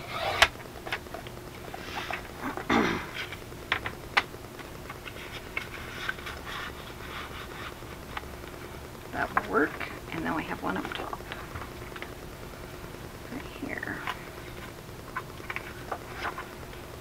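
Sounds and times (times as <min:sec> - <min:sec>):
paper strips rustling and tapping: 0:00.8 - 0:08.3, 0:14.0 - 0:16.8.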